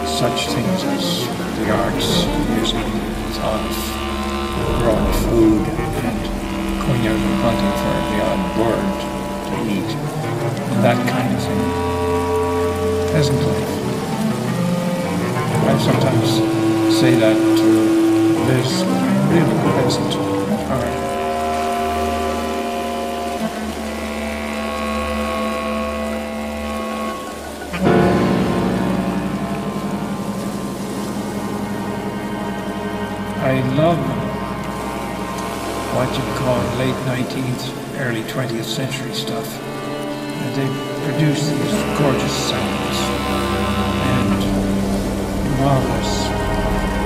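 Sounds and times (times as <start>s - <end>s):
man speaking: 0.0s - 10.1s, 10.7s - 11.7s, 13.1s - 13.8s, 15.6s - 17.8s, 18.4s - 21.1s, 33.4s - 34.3s, 35.9s - 39.6s, 40.4s - 43.2s, 44.0s - 44.6s, 45.4s - 46.5s
chamber ensemble holding notes: 0.0s - 47.0s
steady hissing noise: 0.0s - 47.0s.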